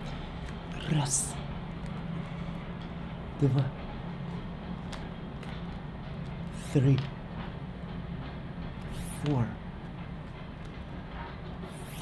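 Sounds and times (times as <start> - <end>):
low background hum with hiss: 0.0 - 12.0.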